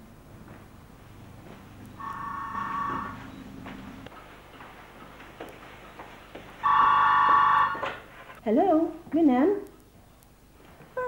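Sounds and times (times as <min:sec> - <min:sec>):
cordless telephone ringing: 0:02.0 - 0:03.3, 0:06.6 - 0:08.0.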